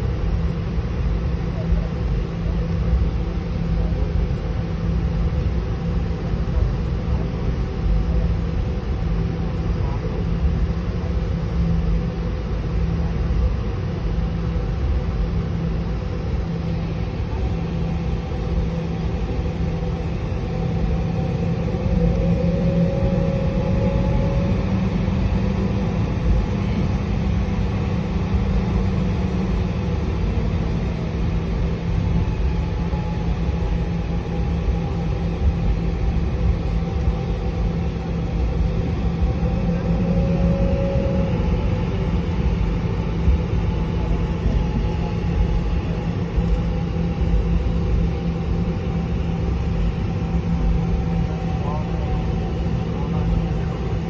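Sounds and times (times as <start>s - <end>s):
faint wavering whine: 0.0s - 54.0s
jet airliner cabin rumble: 0.0s - 54.0s.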